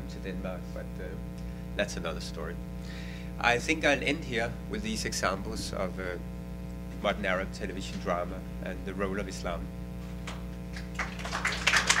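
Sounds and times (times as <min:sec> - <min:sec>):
electrical hum: 0:00.0 - 0:12.0
audience applause: 0:10.7 - 0:12.0.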